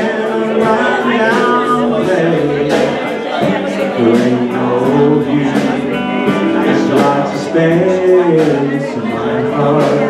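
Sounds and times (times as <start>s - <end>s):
guitar playing the tune: 0.0s - 10.0s
live country band: 0.0s - 10.0s
person singing: 0.0s - 10.0s.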